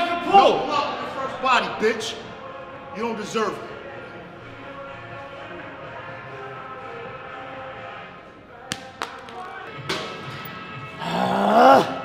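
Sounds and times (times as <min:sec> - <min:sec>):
gym background music: 0:00.0 - 0:12.0
man straining yell: 0:11.0 - 0:12.0.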